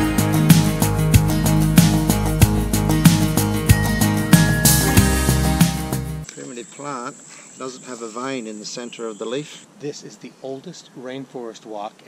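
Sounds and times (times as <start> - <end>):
background music: 0.0 - 6.3
man talking: 6.3 - 12.0.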